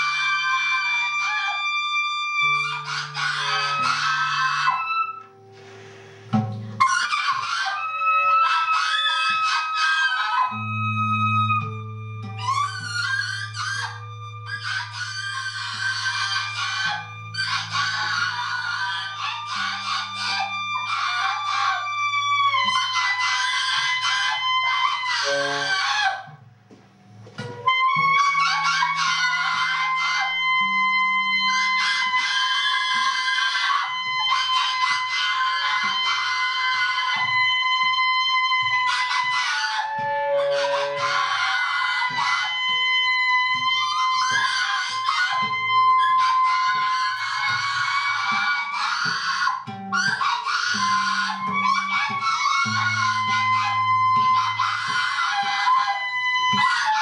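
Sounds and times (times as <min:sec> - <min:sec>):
held high tone: 0:10.5 - 0:26.3
woman screaming into microphone: 0:12.9 - 0:26.3, 0:28.2 - 0:57.0.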